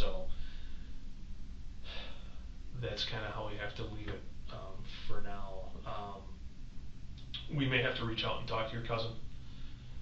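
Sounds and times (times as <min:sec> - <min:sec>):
man speaking: 0:00.0 - 0:00.3, 0:02.8 - 0:06.4, 0:07.3 - 0:09.2
low room hum: 0:00.0 - 0:10.0
man breathing in: 0:00.3 - 0:01.1, 0:01.8 - 0:02.5, 0:09.4 - 0:10.0.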